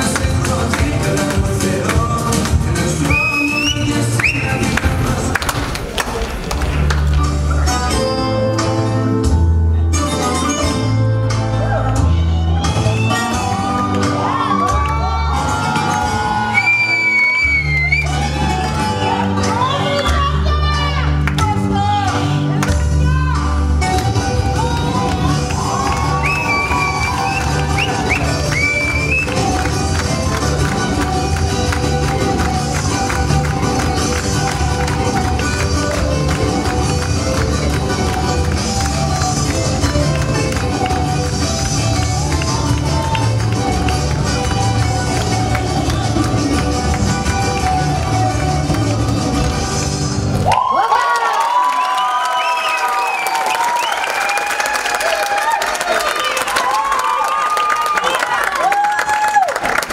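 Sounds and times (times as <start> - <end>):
dance music with steady beat: 0.0 - 5.8, 23.8 - 50.3
audience cheering and applause: 0.0 - 8.0, 11.5 - 21.4, 23.4 - 59.9.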